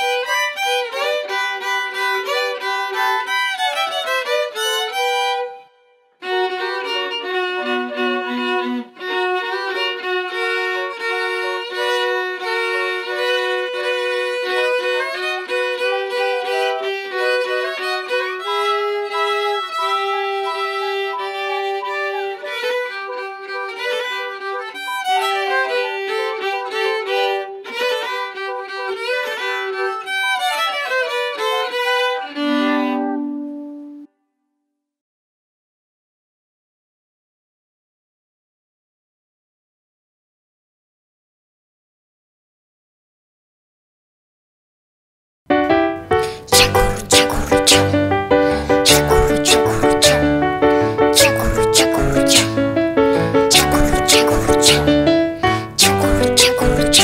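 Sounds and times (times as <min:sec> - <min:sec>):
violins and flute playing: 0:00.0 - 0:34.0, 0:46.5 - 0:57.0.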